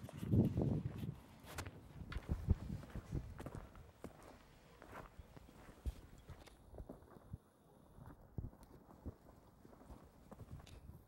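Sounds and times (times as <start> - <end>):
footsteps on stony dirt: 0.0 - 7.4.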